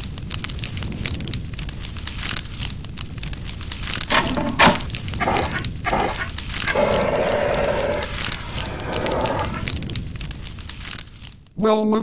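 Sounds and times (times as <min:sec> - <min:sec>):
fire crackling: 0:00.0 - 0:04.2, 0:04.8 - 0:11.5
fire extinguisher spraying: 0:05.2 - 0:09.7.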